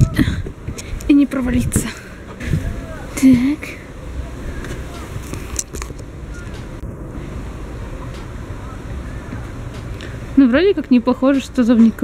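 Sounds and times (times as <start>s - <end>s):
wind rumble on microphone: 0.0s - 12.0s.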